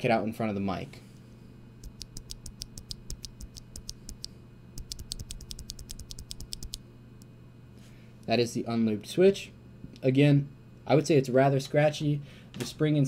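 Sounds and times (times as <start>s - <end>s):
mechanical keyboard switch clicks: 1.8s - 6.8s.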